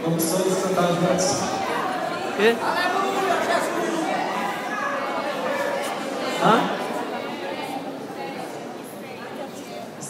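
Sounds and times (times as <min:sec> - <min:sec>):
crowd chatter in a large hall: 0:00.0 - 0:10.0.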